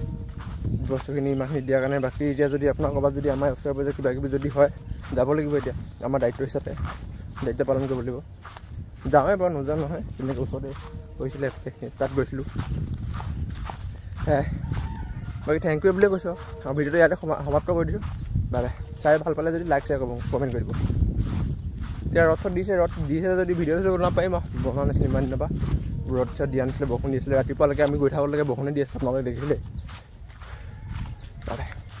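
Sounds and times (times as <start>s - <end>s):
man's voice: 0.0s - 8.3s, 9.0s - 29.8s, 31.3s - 32.0s
wind rumble: 0.0s - 32.0s
rooster crowing: 14.4s - 16.8s, 30.3s - 32.0s.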